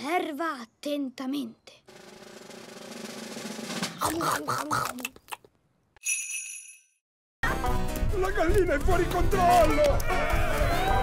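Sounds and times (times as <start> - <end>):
drum roll: 1.9 - 4.0.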